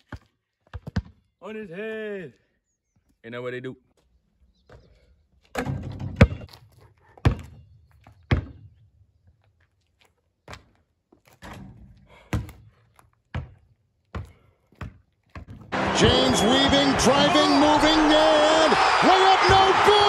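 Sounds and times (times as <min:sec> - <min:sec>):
basketball bouncing on concrete: 0:00.0 - 0:01.2, 0:07.2 - 0:07.6, 0:08.3 - 0:08.7, 0:12.3 - 0:15.7.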